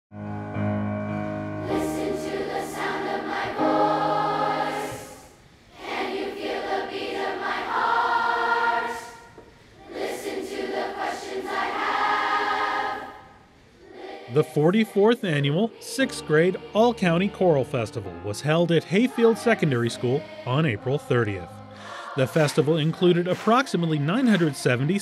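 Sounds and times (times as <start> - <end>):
children's choir singing: 1.3 - 25.0.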